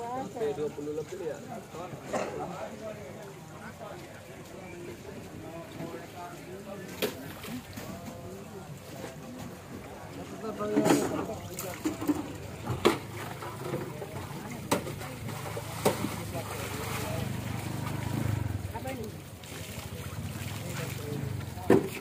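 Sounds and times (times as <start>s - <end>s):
people talking: 0.0s - 22.0s
low engine hum: 12.3s - 21.9s.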